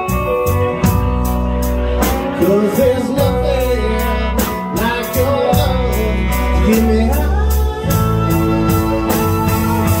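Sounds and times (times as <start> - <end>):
band playing slow blues: 0.0 - 10.0
electric guitar bending notes: 0.0 - 10.0
man singing: 2.0 - 10.0.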